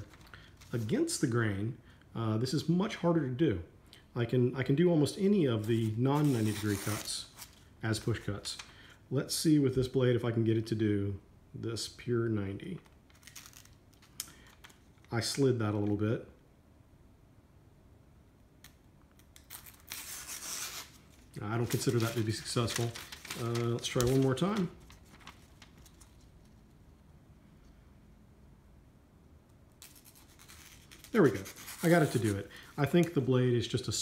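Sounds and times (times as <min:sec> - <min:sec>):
paper being handled: 0:19.5 - 0:26.8, 0:29.8 - 0:33.3.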